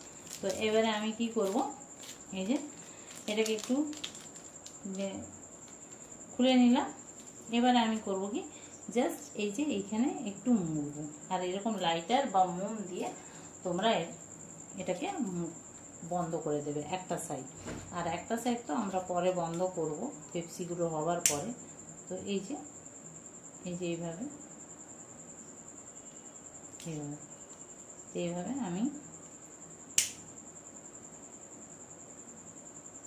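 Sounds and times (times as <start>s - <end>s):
woman speaking: 0.4s - 4.0s, 4.8s - 5.3s, 6.4s - 22.7s, 23.7s - 24.4s, 26.8s - 27.2s, 28.2s - 29.0s
lighter click: 30.0s - 30.2s.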